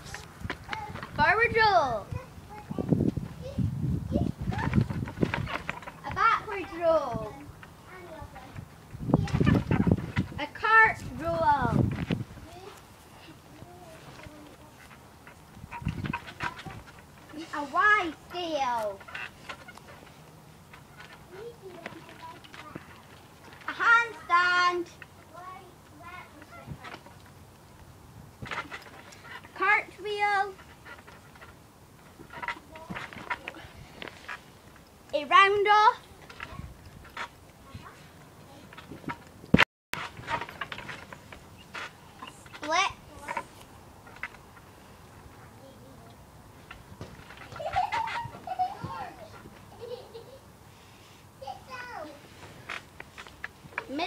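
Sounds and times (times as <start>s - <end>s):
trampoline knocks: 15.2s - 20.1s, 46.6s - 49.6s
girl laughing: 47.5s - 50.6s.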